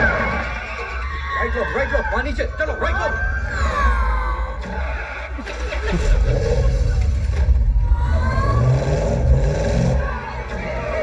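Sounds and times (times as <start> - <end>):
heavy low rumble: 5.6 - 11.0.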